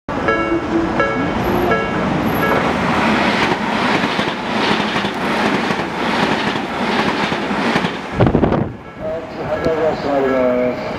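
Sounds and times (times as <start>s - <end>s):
rhythmic rail clatter: 0.1s - 10.9s
train rushing past: 0.1s - 10.9s.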